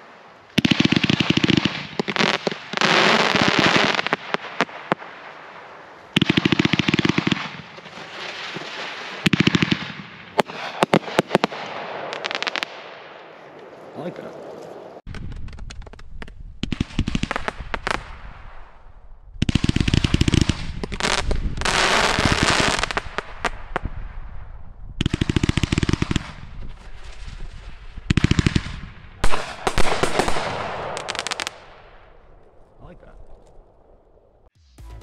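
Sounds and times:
fireworks hissing and crackling: 0:00.0 - 0:09.8, 0:10.4 - 0:12.8, 0:19.5 - 0:23.9.

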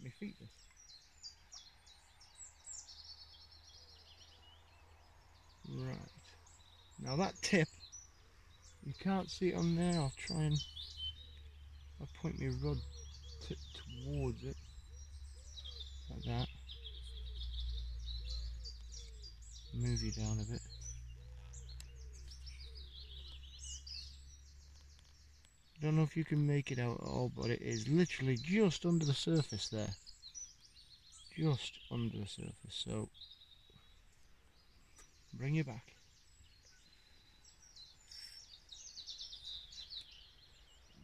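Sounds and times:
small birds chirping: 0:00.0 - 0:41.0.

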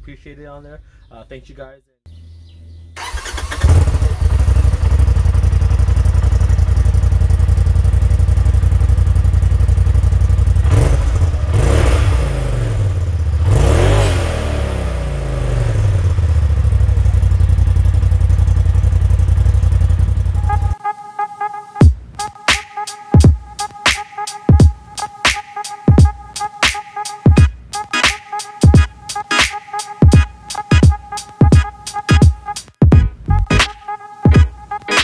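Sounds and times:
engine starting idling and revving: 0:03.0 - 0:20.8.

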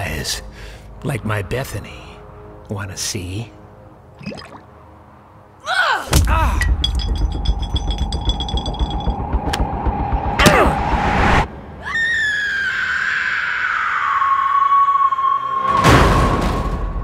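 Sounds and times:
low rumble: 0:06.2 - 0:11.8.

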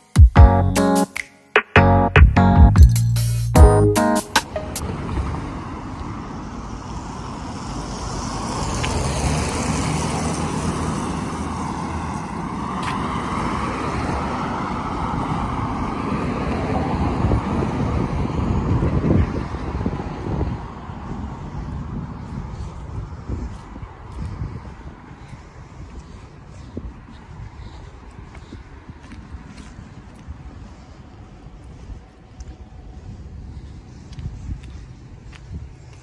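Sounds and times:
bus driving past: 0:04.5 - 0:33.8
cars driving past: 0:04.5 - 0:34.1.

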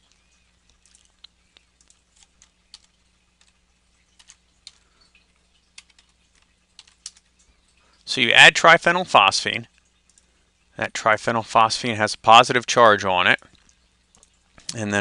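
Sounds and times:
keyboard and mouse clicks: 0:00.1 - 0:04.8, 0:05.6 - 0:07.3.

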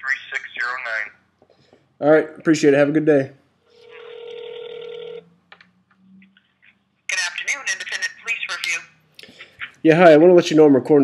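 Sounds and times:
telephone ringback tone: 0:03.8 - 0:05.3.

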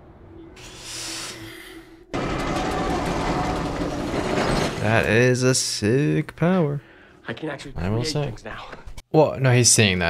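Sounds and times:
deep breath: 0:00.6 - 0:02.1, 0:06.8 - 0:07.2
rushing rumbling sound effect: 0:02.1 - 0:04.9.

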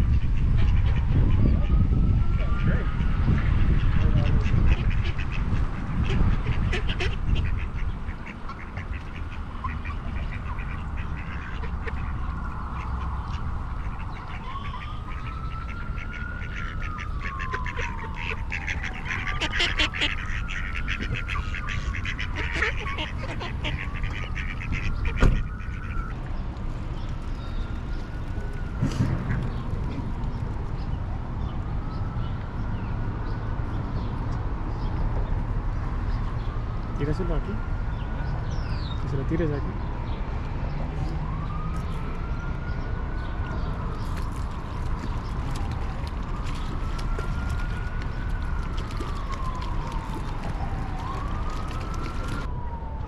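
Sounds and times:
distant siren wailing: 0:00.0 - 0:06.4, 0:07.4 - 0:34.8, 0:35.4 - 0:53.0
wind rumble on microphone: 0:00.0 - 0:20.2, 0:20.8 - 0:37.0, 0:37.6 - 0:53.0
ducks quacking: 0:00.1 - 0:01.8, 0:02.4 - 0:26.1.

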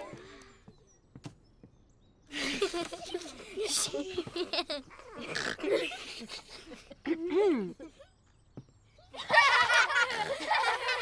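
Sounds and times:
children chattering and giggling: 0:02.3 - 0:11.0.

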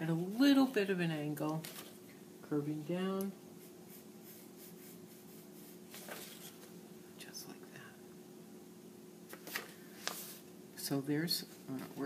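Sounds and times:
steady low hum: 0:00.0 - 0:12.0
pencil scratching on paper: 0:03.6 - 0:06.0.

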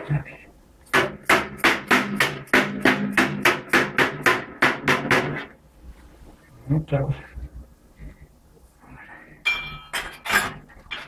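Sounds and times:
mallet hammering sheet steel: 0:00.9 - 0:05.5.

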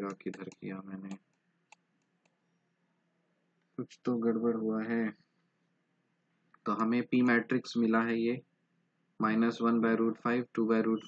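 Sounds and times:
computer mouse clicks: 0:00.0 - 0:02.4
man's voice: 0:03.8 - 0:05.1, 0:06.7 - 0:08.4, 0:09.2 - 0:11.0.

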